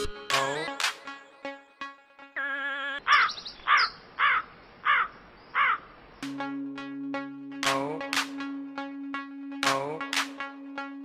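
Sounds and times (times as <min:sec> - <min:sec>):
crow cawing: 0:03.0 - 0:05.9.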